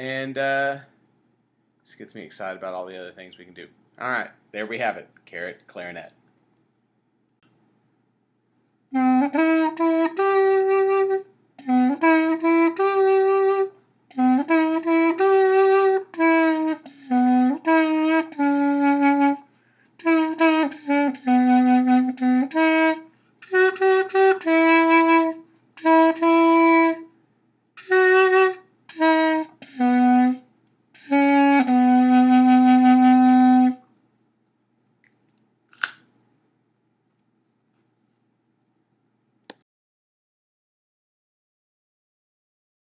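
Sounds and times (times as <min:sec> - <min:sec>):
reedy clarinet-like tune: 0:08.9 - 0:27.1, 0:27.8 - 0:33.8.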